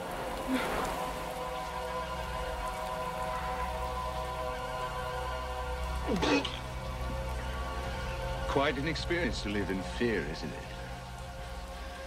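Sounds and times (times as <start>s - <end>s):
heavy rain: 0.0s - 12.0s.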